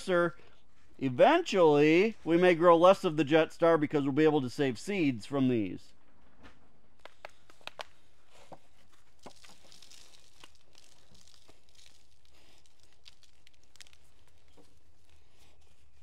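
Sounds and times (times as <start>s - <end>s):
hands rustling potting soil: 6.9s - 16.0s.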